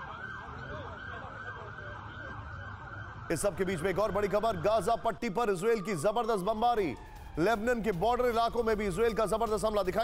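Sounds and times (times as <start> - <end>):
emergency sirens wailing: 0.0 - 10.0
man's voice: 3.3 - 10.0.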